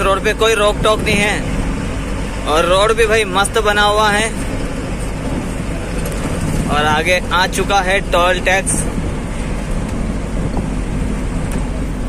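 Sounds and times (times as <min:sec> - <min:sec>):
truck engine rumble: 0:00.0 - 0:12.0
tyre and road noise: 0:00.0 - 0:12.0.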